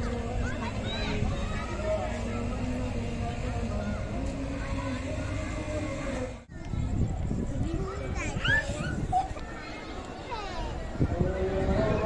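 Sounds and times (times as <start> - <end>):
chatter of people walking: 0.0 - 12.0
child's high-pitched calls: 8.0 - 10.8.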